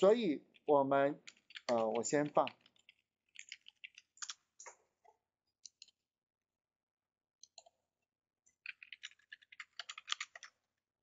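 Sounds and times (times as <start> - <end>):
keyboard typing: 0.5 - 6.1, 7.4 - 10.9.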